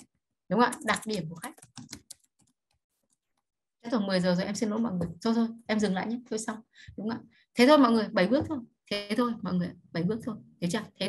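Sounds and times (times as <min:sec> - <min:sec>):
woman speaking: 0:00.5 - 0:01.6, 0:03.9 - 0:11.0
computer keyboard key clicks: 0:00.7 - 0:02.6.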